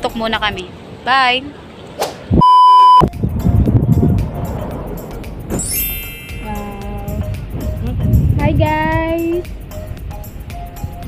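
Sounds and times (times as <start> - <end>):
high beep tone: 2.4 - 3.1
wind buffeting microphone: 3.0 - 5.6, 6.4 - 11.0.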